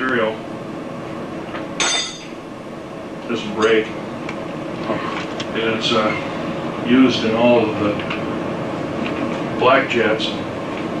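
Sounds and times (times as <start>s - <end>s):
metallic clink: 1.8s - 2.4s.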